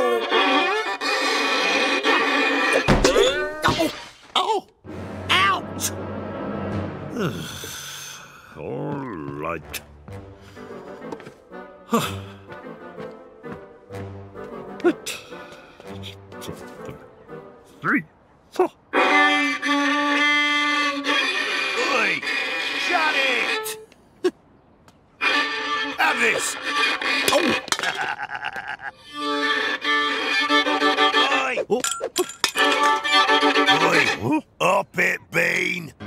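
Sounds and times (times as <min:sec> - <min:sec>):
violin playing a tune: 0:00.0 - 0:02.8, 0:18.9 - 0:23.8, 0:25.2 - 0:27.3, 0:29.0 - 0:31.6, 0:32.6 - 0:34.2.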